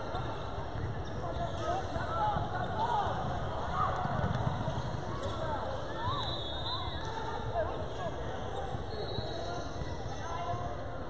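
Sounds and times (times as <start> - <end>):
voices in a gym: 0.0 - 11.0.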